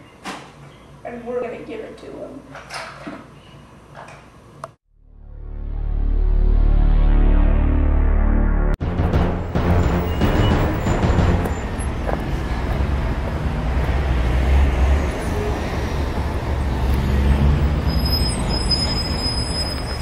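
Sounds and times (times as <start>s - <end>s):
road noise: 8.9s - 20.0s
vehicle rumble: 9.1s - 20.0s.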